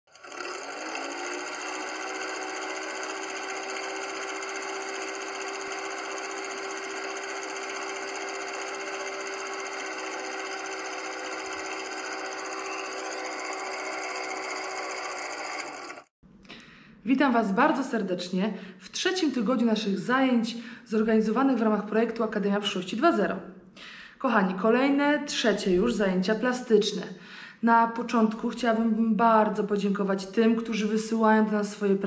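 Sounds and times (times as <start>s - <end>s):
film projector clatter and hum: 0.1s - 16.1s.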